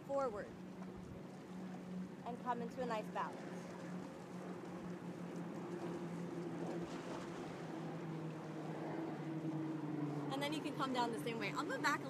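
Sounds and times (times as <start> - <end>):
boat engine droning: 0.0 - 12.0
water noise: 0.0 - 12.0
wind: 0.0 - 12.0.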